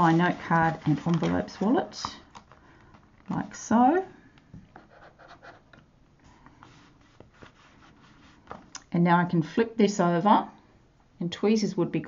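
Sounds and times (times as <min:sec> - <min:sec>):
paper rubbing and rustling: 0:00.0 - 0:02.0, 0:06.6 - 0:08.6.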